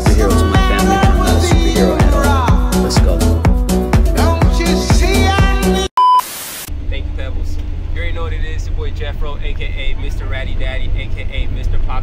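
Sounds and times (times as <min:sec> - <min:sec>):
voices: 0:00.0 - 0:03.3
short high beep: 0:06.0 - 0:06.4
static hiss: 0:06.2 - 0:06.7
bus interior rumble: 0:06.8 - 0:12.0.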